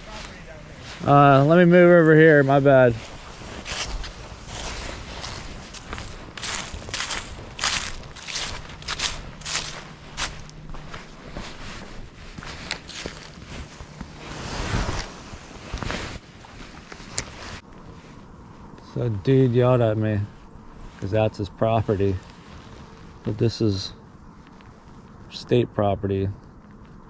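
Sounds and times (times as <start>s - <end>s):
footsteps through dry leaves: 0.0s - 18.6s
faint low hum: 0.0s - 27.0s.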